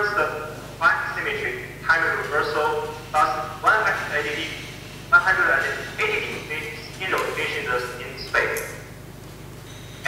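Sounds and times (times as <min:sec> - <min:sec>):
man's voice over video call: 0:00.0 - 0:08.8
steady low hum: 0:00.0 - 0:10.0.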